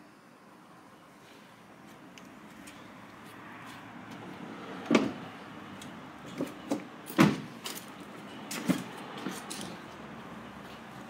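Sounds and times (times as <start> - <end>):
car door knocks and thumps: 6.7 - 7.5.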